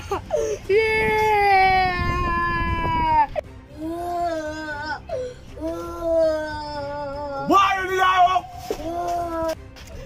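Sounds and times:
boy crying and wailing: 0:00.0 - 0:09.6.

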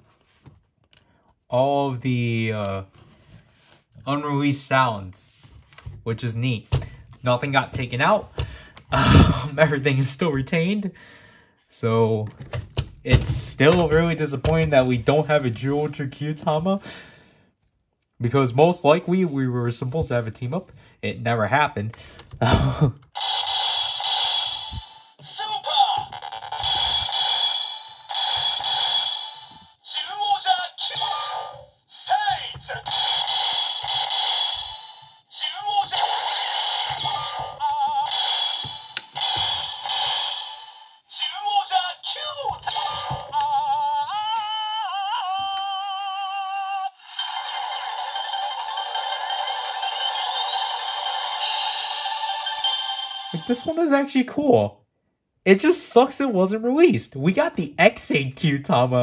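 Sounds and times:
toy speaker music: 0:23.2 - 0:45.8, 0:46.6 - 0:53.8
tinny toy voice calls: 0:23.2 - 0:53.8.

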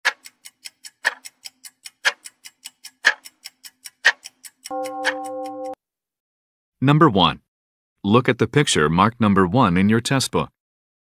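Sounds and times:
countdown timer ticking: 0:00.1 - 0:05.8.

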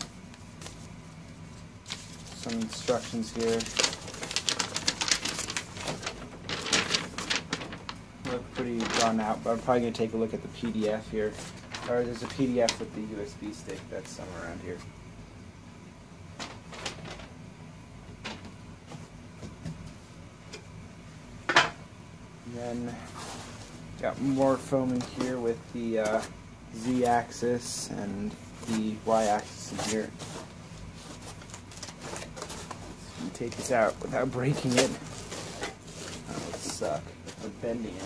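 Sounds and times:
foam packing rustling: 0:00.0 - 0:15.0, 0:16.4 - 0:17.4, 0:22.7 - 0:38.0
foam rubbing: 0:22.7 - 0:27.4, 0:28.6 - 0:38.0.

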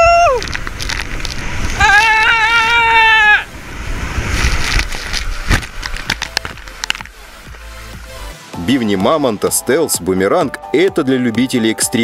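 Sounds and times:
person yelling: 0:00.0 - 0:00.4, 0:01.8 - 0:03.5
water rushing and splashing: 0:00.0 - 0:09.9.

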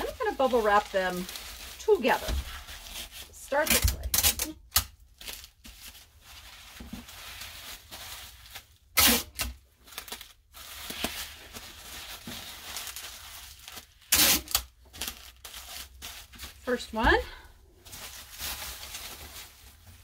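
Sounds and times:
bubble wrap crinkling: 0:00.0 - 0:20.0
packing tape ripping: 0:01.1 - 0:05.6, 0:08.4 - 0:16.5.

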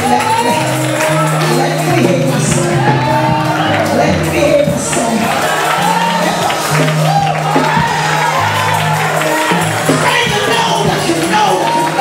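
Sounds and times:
congregation clapping: 0:00.0 - 0:12.0
held bass notes: 0:00.0 - 0:12.0
voices singing gospel: 0:00.0 - 0:12.0.

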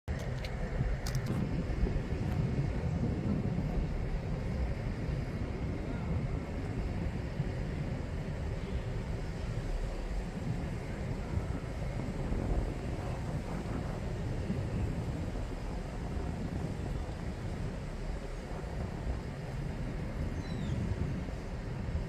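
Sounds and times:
light clicks: 0:00.1 - 0:01.3
train rumbling: 0:00.1 - 0:22.0
wind buffeting microphone: 0:00.1 - 0:22.0.

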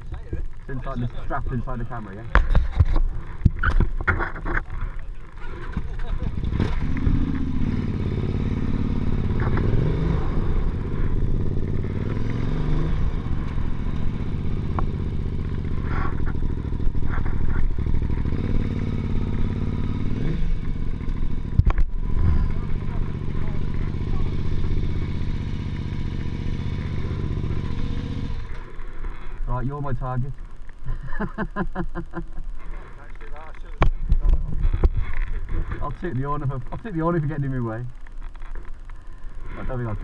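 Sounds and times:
motorcycle engine revving: 0:00.0 - 0:40.0.

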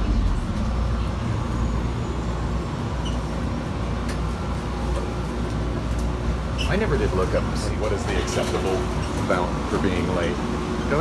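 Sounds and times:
train car rumble and hum: 0:00.0 - 0:11.0.

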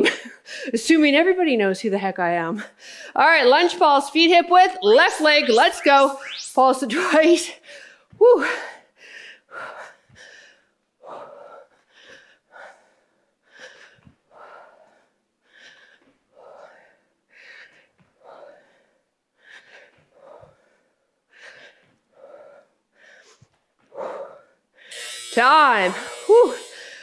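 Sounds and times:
woman breathing hard: 0:07.6 - 0:24.9, 0:26.7 - 0:27.0.

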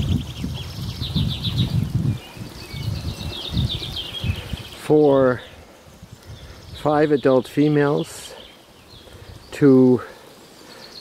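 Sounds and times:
low rumbling on microphone: 0:00.0 - 0:07.0
small birds trilling: 0:00.0 - 0:11.0.

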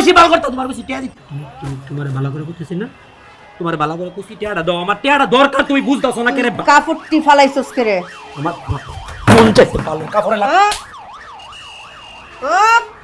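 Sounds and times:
siren-like warbling tone: 0:05.6 - 0:13.0.

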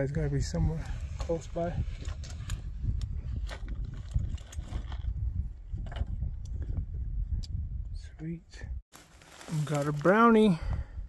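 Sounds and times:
wind rumble on microphone: 0:00.0 - 0:08.8.

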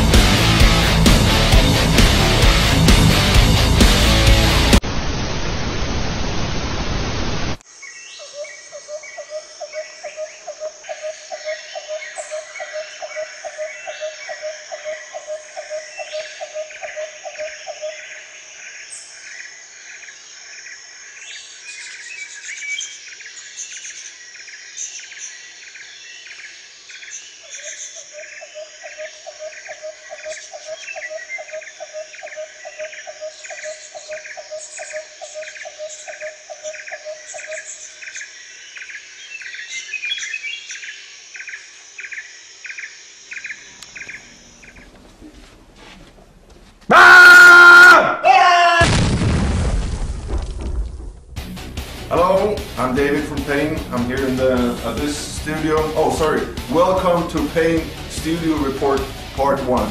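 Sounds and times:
regular animal chirp: 0:27.1 - 0:45.4
lower pulsed animal call: 0:43.4 - 0:45.7.

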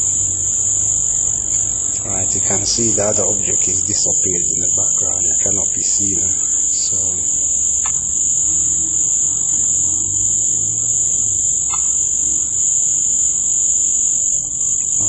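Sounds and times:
faint low murmur: 0:00.0 - 0:07.6
high-pitched whine: 0:00.0 - 0:15.0.

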